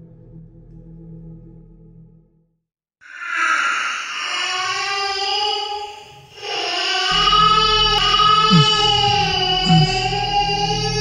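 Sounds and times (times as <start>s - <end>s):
steady tones: 7.1s - 10.7s.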